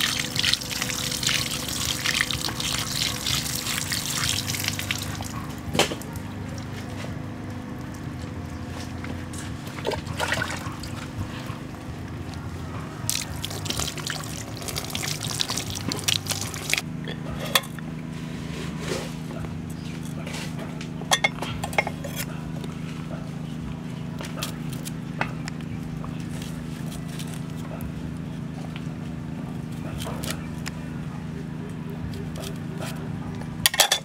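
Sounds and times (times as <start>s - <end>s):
water trickling and splashing: 0.0s - 5.6s, 9.8s - 11.2s, 13.0s - 16.8s
steady low hum: 0.0s - 34.0s.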